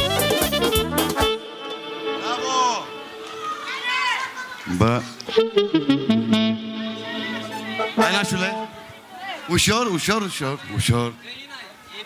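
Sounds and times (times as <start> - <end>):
faint band music: 0.0 - 3.9, 5.3 - 9.3
high voice calling out: 5.3 - 9.2
crowded party voices: 6.6 - 9.7.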